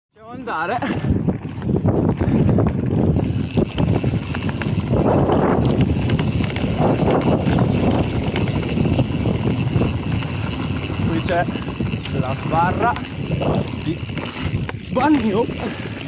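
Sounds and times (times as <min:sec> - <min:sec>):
bike rattling over bumps: 0:00.3 - 0:16.0
bike tyres on dirt trail: 0:00.3 - 0:16.0
wind on microphone: 0:00.3 - 0:16.0.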